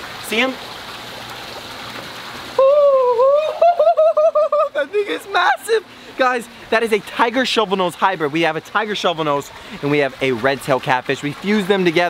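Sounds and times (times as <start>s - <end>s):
water trickling and splashing: 0.0s - 12.0s
man's loud vocal exclamation: 2.6s - 5.8s.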